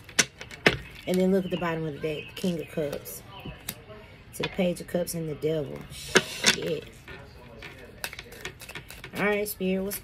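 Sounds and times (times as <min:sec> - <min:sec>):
cards being shuffled: 0:08.0 - 0:09.5.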